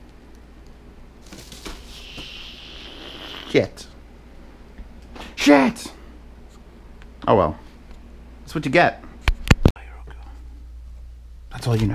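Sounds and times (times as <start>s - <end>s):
low steady hum: 0.0s - 11.9s.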